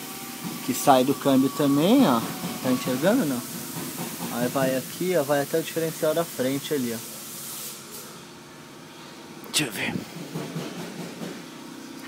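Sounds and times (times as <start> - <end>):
workshop hissing noise: 0.0 - 12.0.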